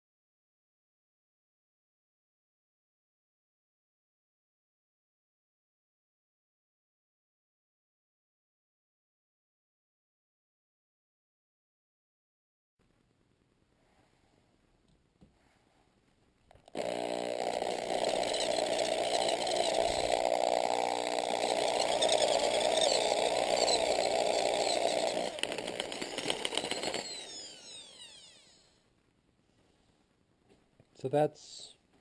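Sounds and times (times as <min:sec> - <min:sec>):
electric drill boring metal: 0:16.7 - 0:28.7
drill motor winding down whine: 0:16.7 - 0:28.8.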